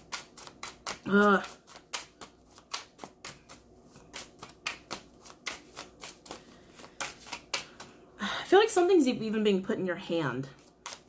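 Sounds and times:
cards being shuffled: 0.0s - 8.0s, 10.5s - 11.0s.

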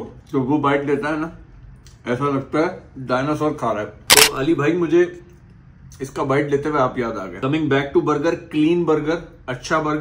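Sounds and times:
sharp click: 4.1s - 4.6s.

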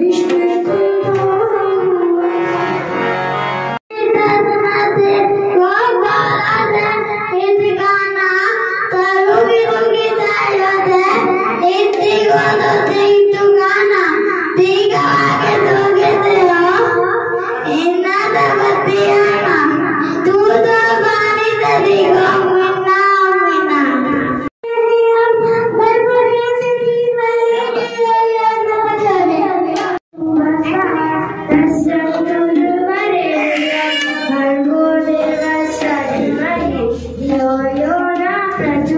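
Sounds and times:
boy singing into a microphone: 0.0s - 2.7s, 3.9s - 38.9s.

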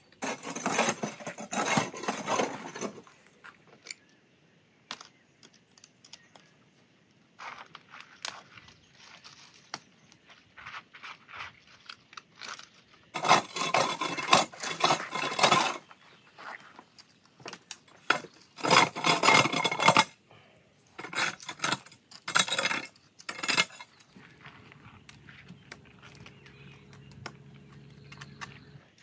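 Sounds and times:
metal tools scraping concrete and gravel: 0.0s - 4.0s, 12.2s - 20.2s, 20.9s - 29.0s.

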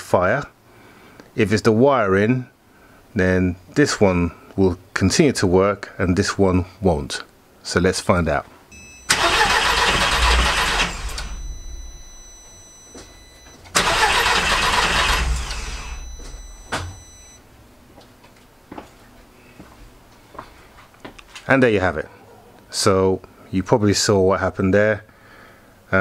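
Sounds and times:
engine cranking on starter: 9.0s - 11.8s, 13.7s - 17.1s.

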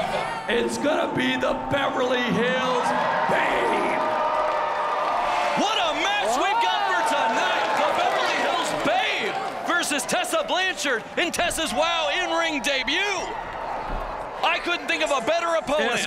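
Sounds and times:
crowd noise in hall: 0.0s - 16.0s.

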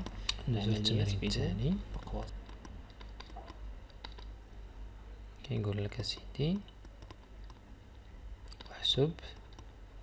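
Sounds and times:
steady low hum: 0.0s - 10.0s
stylus tapping on tablet: 1.9s - 4.3s, 6.1s - 7.6s.

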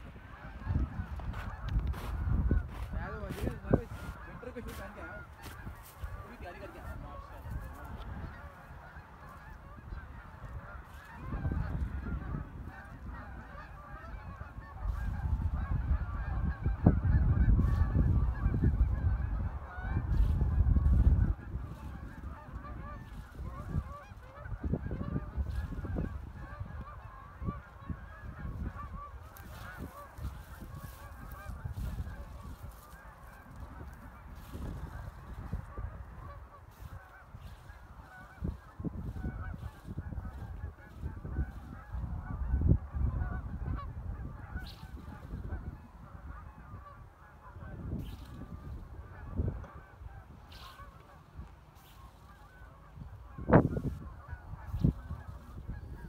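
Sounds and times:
flock of birds calling: 0.0s - 56.0s
wind rumble on microphone: 0.0s - 56.0s.

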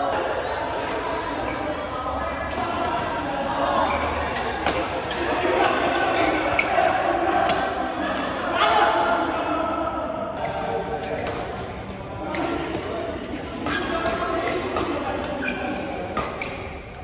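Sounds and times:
players' voices: 0.0s - 17.0s.

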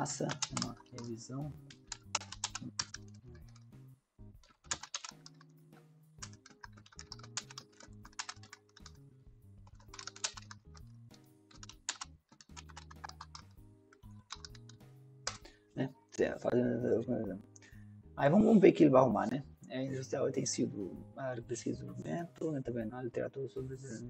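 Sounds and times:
soft background music: 0.0s - 24.0s
typing on computer keyboard: 0.1s - 3.7s, 4.4s - 5.6s, 6.2s - 9.0s, 9.6s - 15.5s.

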